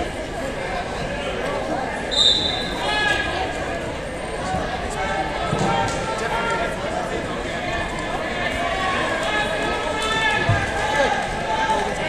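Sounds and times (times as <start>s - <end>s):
referee's whistle: 2.1s - 2.9s.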